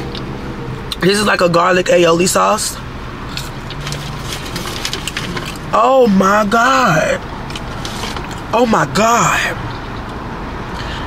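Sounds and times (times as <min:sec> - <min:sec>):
car cabin hum: 0:00.8 - 0:10.2
fries being chewed: 0:03.3 - 0:05.7.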